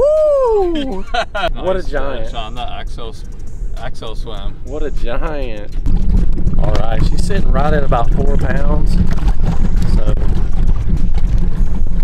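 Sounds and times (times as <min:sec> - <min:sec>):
wind rumbling on microphone: 0:05.6 - 0:12.0.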